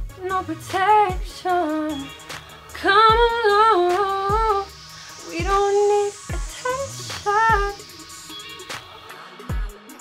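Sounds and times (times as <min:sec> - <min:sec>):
woman singing: 0:00.0 - 0:08.0
low steady beat: 0:02.1 - 0:10.0.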